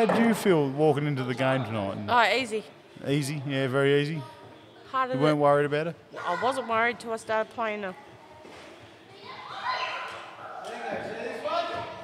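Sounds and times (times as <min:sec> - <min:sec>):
man and woman speaking: 0:00.0 - 0:07.0, 0:10.6 - 0:12.0.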